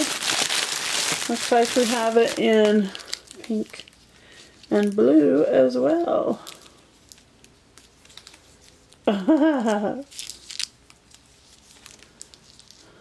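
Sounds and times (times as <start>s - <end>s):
plastic packaging crinkling: 0.0s - 9.1s, 9.7s - 13.0s.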